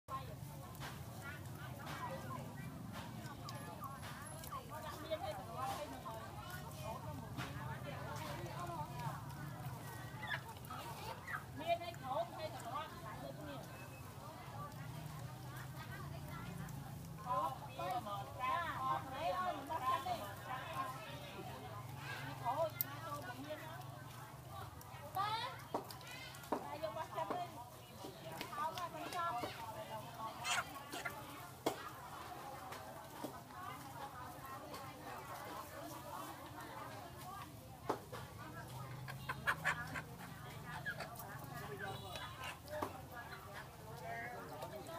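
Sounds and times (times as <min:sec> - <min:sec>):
chickens clucking: 0:04.9 - 0:22.4, 0:23.2 - 0:44.9.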